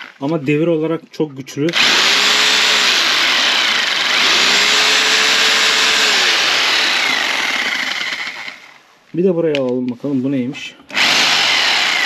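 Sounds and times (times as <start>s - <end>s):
rotary hammer drill motor running: 1.7s - 8.8s, 10.9s - 12.0s.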